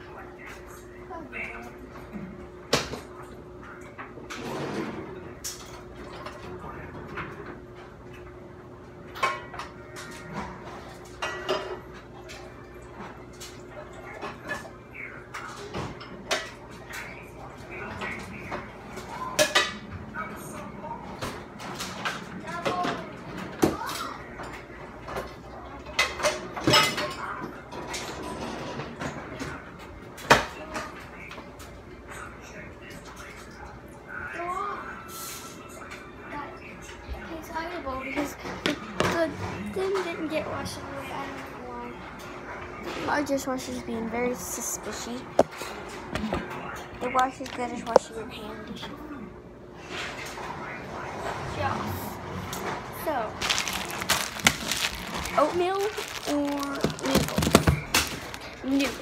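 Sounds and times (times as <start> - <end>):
bowls and utensils clattering: 9.1 - 17.2, 24.3 - 29.5, 52.5 - 59.0.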